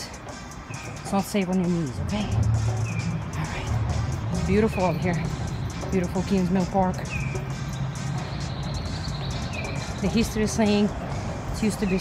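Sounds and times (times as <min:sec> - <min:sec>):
steady low rumble: 0:00.6 - 0:12.0
bird whistled call: 0:07.1 - 0:10.0.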